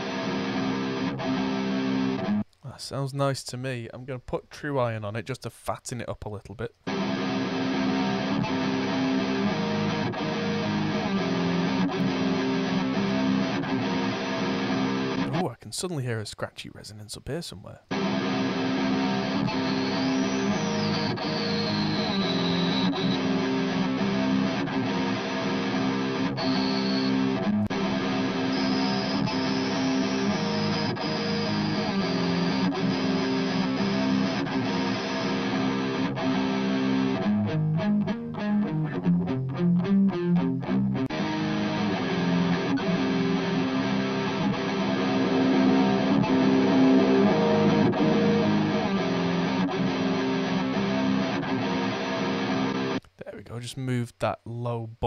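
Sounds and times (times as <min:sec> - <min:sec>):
distorted electric guitar: 0:00.0 - 0:02.7, 0:06.7 - 0:15.6, 0:17.8 - 0:53.4.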